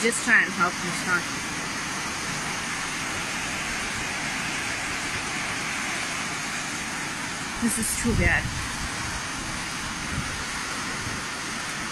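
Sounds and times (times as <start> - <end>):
rushing flood water: 0.0 - 11.9.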